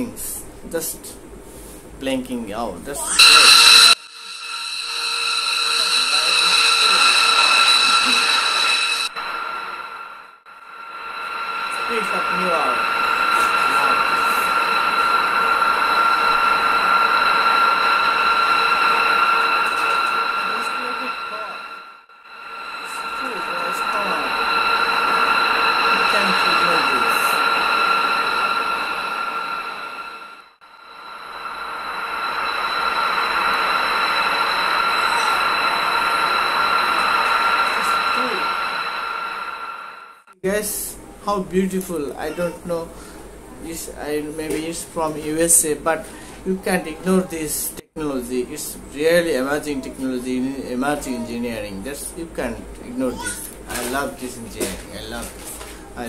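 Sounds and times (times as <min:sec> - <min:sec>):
jet engines whining: 0:03.0 - 0:40.4
rush of engine noise: 0:03.2 - 0:40.4.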